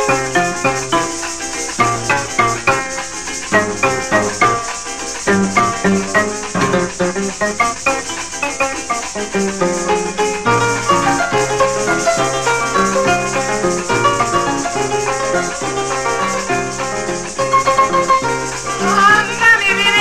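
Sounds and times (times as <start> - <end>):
harp plucked melody: 0.0 - 18.9
maracas shaking: 0.0 - 20.0.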